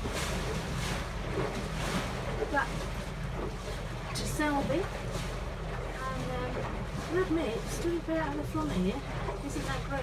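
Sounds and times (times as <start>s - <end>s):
boat engine rumbling: 0.0s - 10.0s
water washing against hull: 0.0s - 10.0s.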